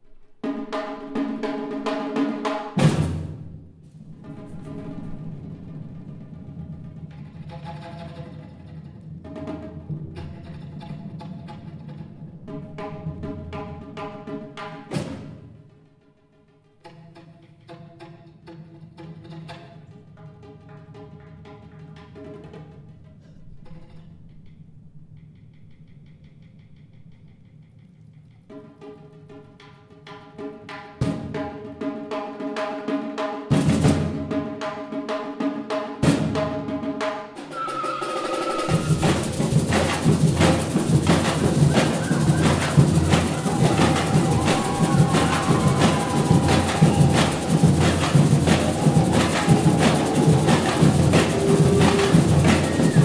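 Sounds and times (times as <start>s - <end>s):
rapid drum strokes: 0.0s - 15.6s, 30.3s - 53.0s
loud percussion hit: 37.4s - 53.0s
pitched melody line: 37.4s - 53.0s.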